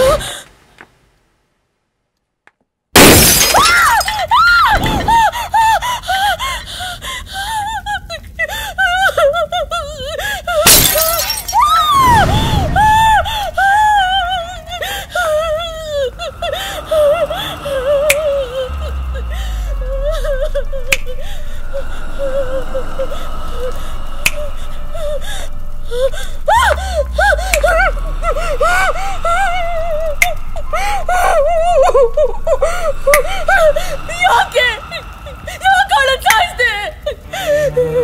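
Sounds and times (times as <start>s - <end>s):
glass shattering: 3.0s - 4.2s, 10.7s - 12.4s
finger snap: 18.0s - 18.5s, 20.9s - 21.2s.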